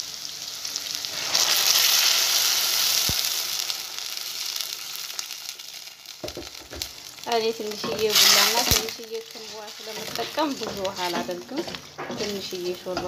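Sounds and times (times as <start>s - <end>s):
vegetables sizzling in a pot: 0.0s - 13.0s
wooden spoon stirring: 7.3s - 13.0s.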